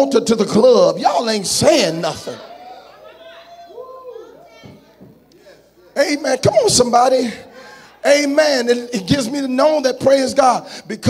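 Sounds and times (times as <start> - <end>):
congregation voices responding: 0.0 - 11.0.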